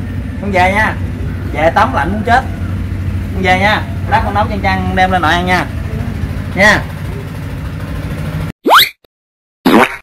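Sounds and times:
engine idling: 0.0s - 8.5s.

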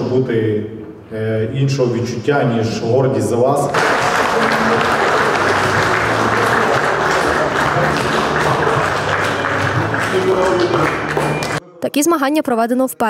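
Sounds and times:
background music: 3.4s - 13.0s
audience applauding: 3.7s - 11.6s.

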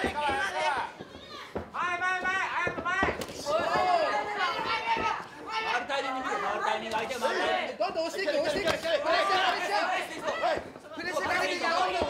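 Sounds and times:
people shouting: 0.0s - 12.0s.

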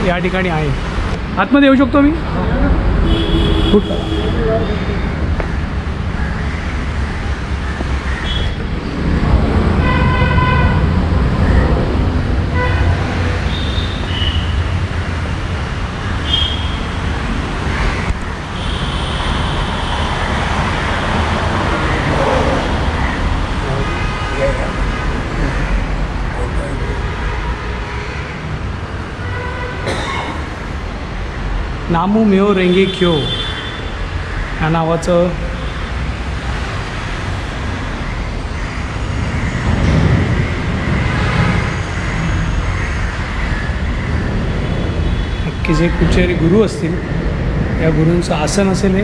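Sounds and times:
street traffic rumble: 0.0s - 49.0s
car horns tooting: 3.0s - 5.0s, 9.8s - 11.0s, 12.4s - 14.8s, 16.2s - 17.0s, 29.2s - 30.5s, 32.6s - 34.0s.

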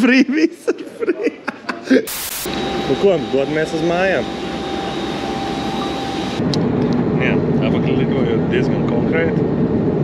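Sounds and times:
jet aircraft roar with high whine: 2.2s - 10.0s
airliner cabin hum: 2.5s - 10.0s.

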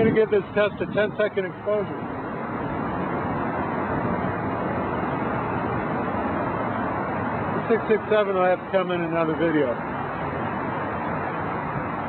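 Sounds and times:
outdoor hiss-like rumble: 0.0s - 12.0s.

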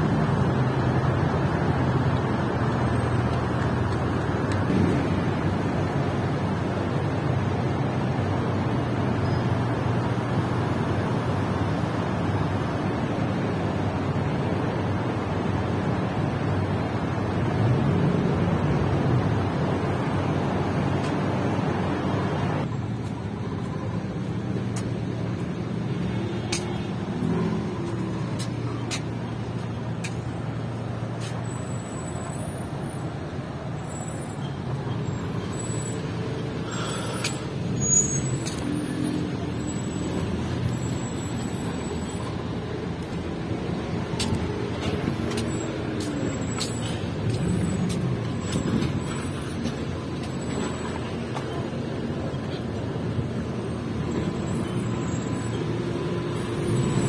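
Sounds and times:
idling engines hum: 0.0s - 57.0s
passing traffic rush: 0.0s - 57.0s
footsteps clicking: 24.6s - 30.3s, 44.0s - 50.4s.

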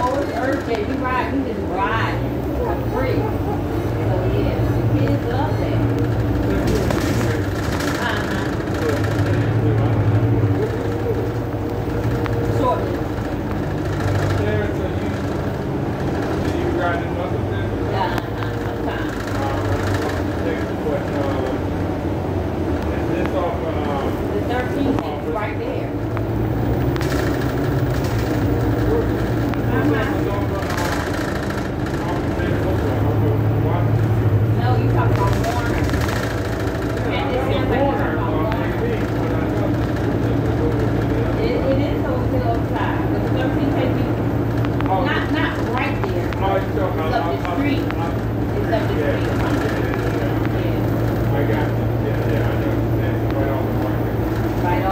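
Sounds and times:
bus engine droning: 0.0s - 54.9s
indistinct passenger voices: 0.0s - 54.9s.

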